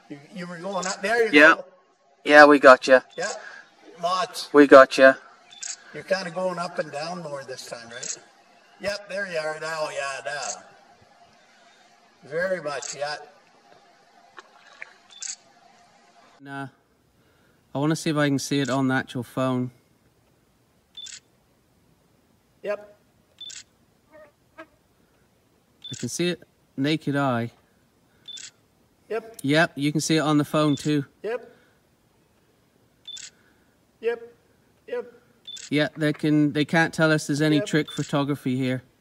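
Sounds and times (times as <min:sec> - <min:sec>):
steady background hiss: 0:00.0 - 0:39.0.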